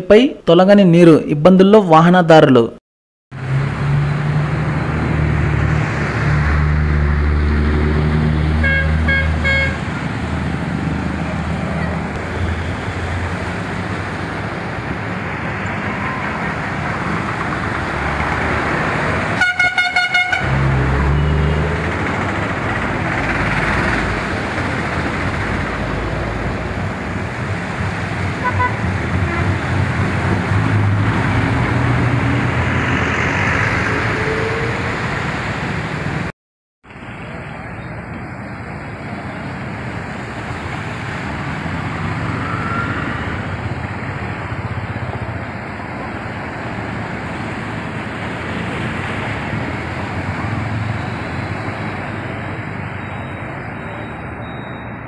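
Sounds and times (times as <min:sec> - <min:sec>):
vehicle engines running: 0:03.3 - 0:36.3, 0:36.9 - 0:55.0
water splashing under wheels: 0:03.4 - 0:36.3, 0:36.9 - 0:54.8
car horn honking: 0:08.6 - 0:09.9, 0:19.4 - 0:20.6, 0:28.4 - 0:29.6.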